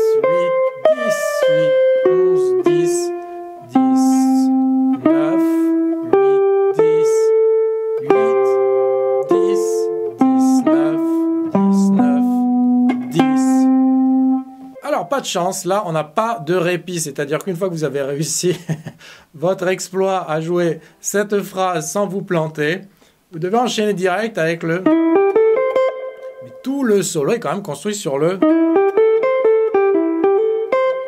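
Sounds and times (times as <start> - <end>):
jazz guitar solo: 0.0 - 15.2, 24.5 - 31.0.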